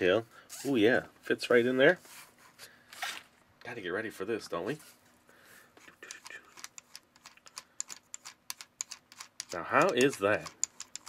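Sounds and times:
plastic toy wheel clicking: 0:06.1 - 0:11.0.

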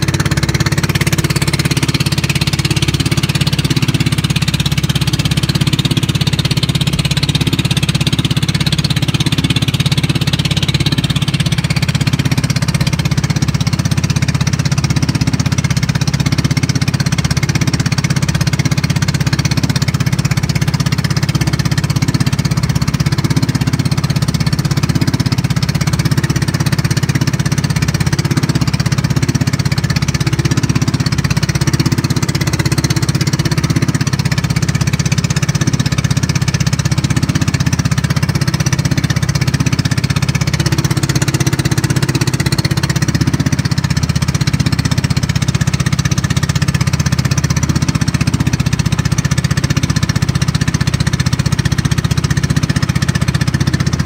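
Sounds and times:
boat engine chugging: 0:00.0 - 0:54.0.

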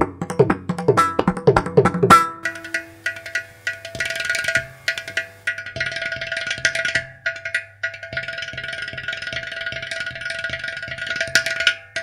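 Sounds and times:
clay pot drum strokes: 0:01.0 - 0:05.6.

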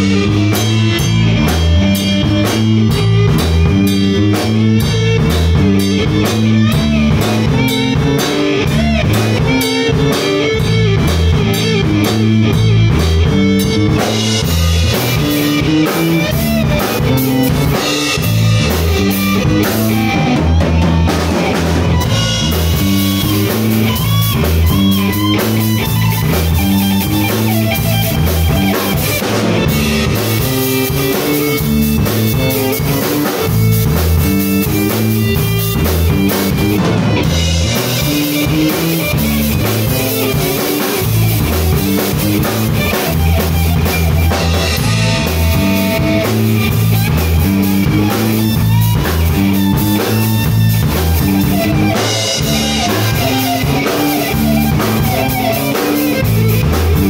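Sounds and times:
drum kit: 0:00.0 - 0:57.0
electric guitar lead: 0:00.0 - 0:57.0
stepping bass line: 0:00.0 - 0:57.0.

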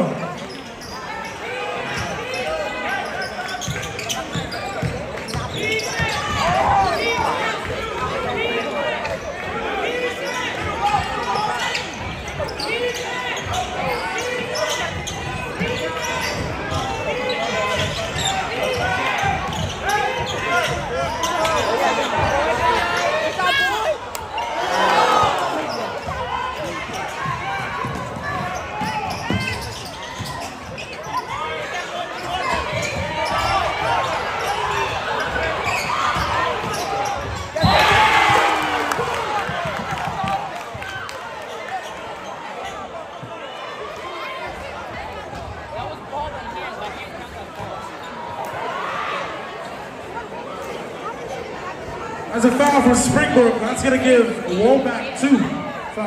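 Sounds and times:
crowd chatter: 0:00.0 - 0:56.0
loud crowd roar: 0:01.2 - 0:56.0.

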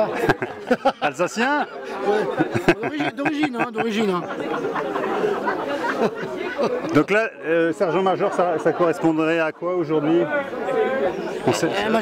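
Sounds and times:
overlapping conversation: 0:00.0 - 0:12.0.

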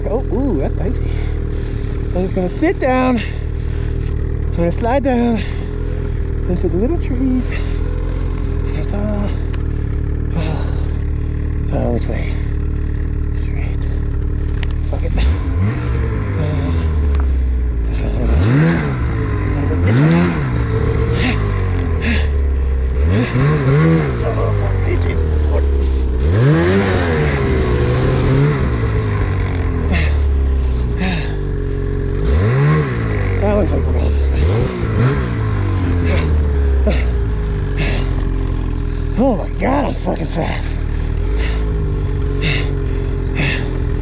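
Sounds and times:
snowmobile engine revving: 0:00.0 - 0:44.0.

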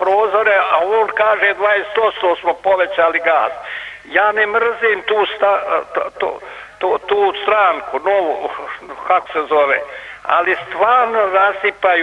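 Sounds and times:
man talking over telephone: 0:00.0 - 0:12.0.

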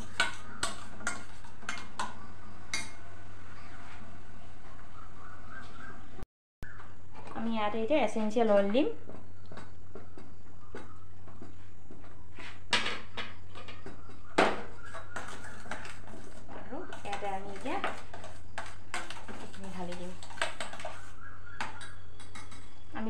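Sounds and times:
metal spoon scraping steel bowl: 0:00.0 - 0:02.1, 0:14.8 - 0:22.8.

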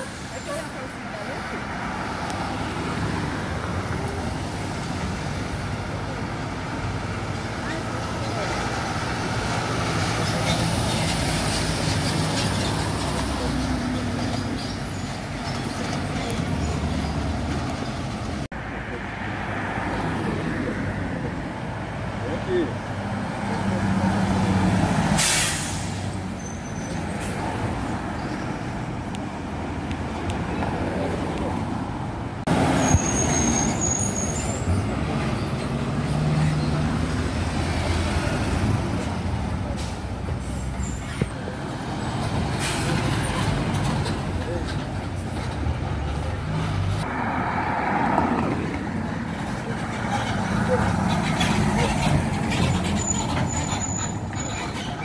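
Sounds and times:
diesel buses passing: 0:00.0 - 0:55.0
traffic noise: 0:00.0 - 0:55.0
bus air brake hiss: 0:25.0 - 0:27.4, 0:42.5 - 0:43.4.

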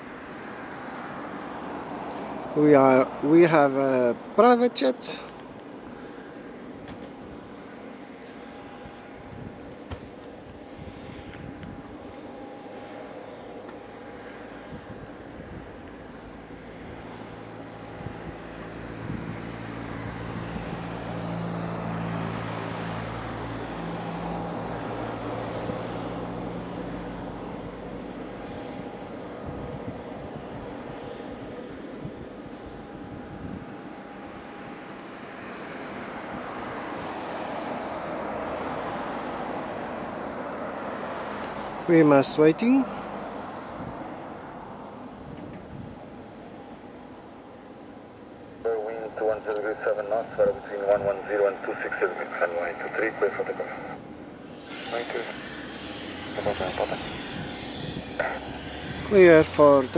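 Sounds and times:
jet engines whining: 0:00.0 - 0:59.9.

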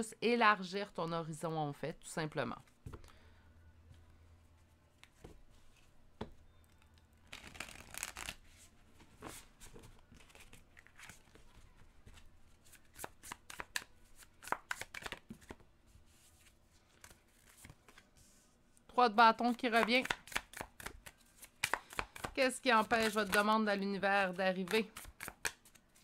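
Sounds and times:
cards being shuffled: 0:07.3 - 0:15.6, 0:19.6 - 0:23.6, 0:24.2 - 0:26.0.

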